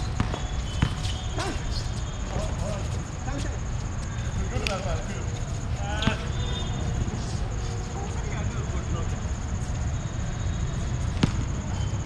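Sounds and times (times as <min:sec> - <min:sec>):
players calling out: 0:00.1 - 0:09.3.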